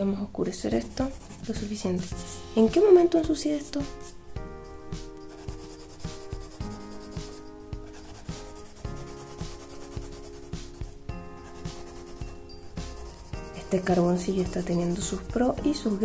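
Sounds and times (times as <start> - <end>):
background music with steady beat: 0.0 - 16.0
pencil scratching on paper: 0.4 - 2.9, 5.0 - 16.0.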